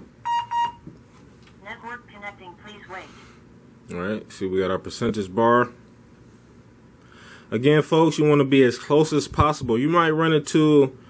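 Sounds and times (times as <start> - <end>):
short electronic beeps: 0.2 - 0.8.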